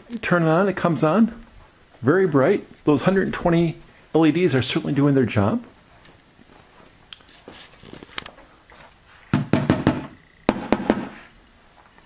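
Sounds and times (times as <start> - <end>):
knocking on light fixture: 9.3 - 11.2.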